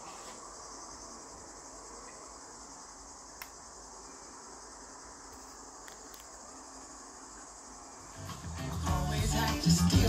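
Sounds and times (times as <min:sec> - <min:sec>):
high-pitched hiss: 0:00.0 - 0:10.0.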